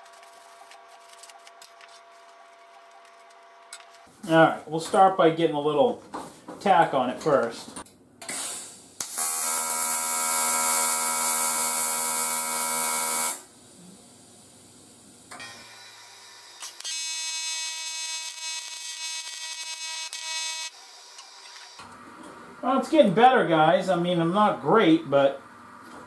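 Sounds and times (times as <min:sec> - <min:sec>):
welding arc buzzing: 0:08.3 - 0:13.5, 0:15.4 - 0:21.9.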